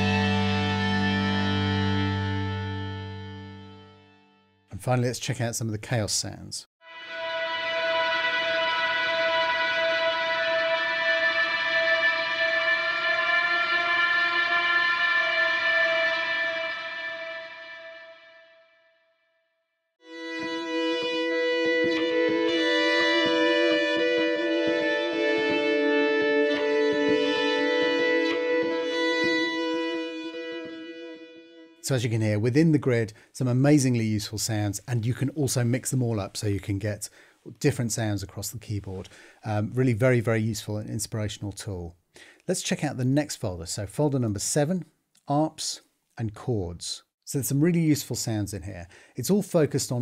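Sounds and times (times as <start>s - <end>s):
distorted electric guitar chord: 0.0s - 4.6s, 6.9s - 18.9s, 20.0s - 31.8s
chaotic guitar sound with crackling: 0.0s - 4.7s, 6.9s - 18.9s, 20.0s - 33.0s.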